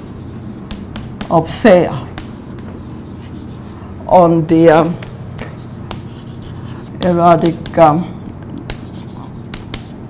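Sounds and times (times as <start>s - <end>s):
chalk tapping and scraping on blackboard: 0.0s - 3.8s, 5.3s - 8.0s, 8.6s - 10.0s
low room hum: 0.0s - 10.0s.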